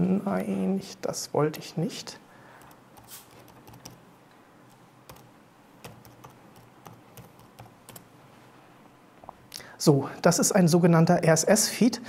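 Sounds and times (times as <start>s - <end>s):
faint keyboard typing: 2.5s - 4.0s, 4.7s - 8.1s.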